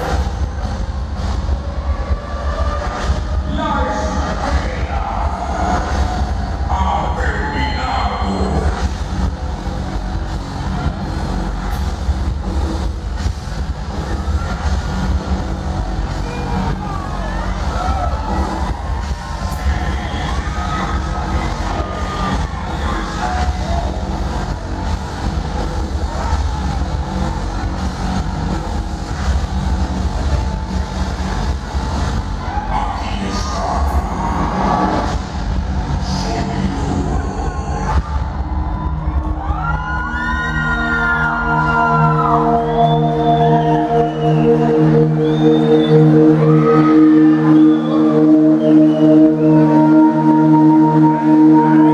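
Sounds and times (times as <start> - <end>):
crowd cheering and whooping: 0.0 - 3.4, 13.8 - 36.0, 37.0 - 51.9
amplified concert music: 0.0 - 51.9.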